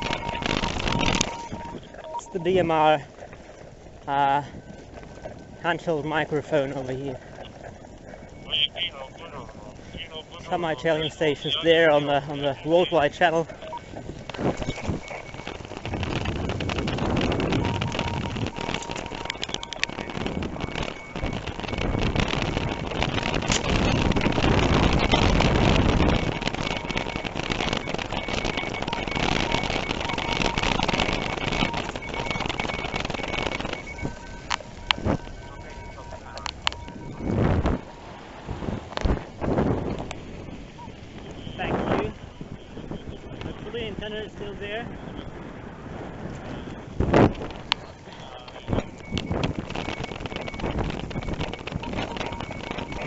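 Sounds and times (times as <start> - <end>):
bicycle tyre and rattle noise: 0.0 - 8.5, 9.5 - 53.0
wind rushing over microphone: 0.0 - 53.0.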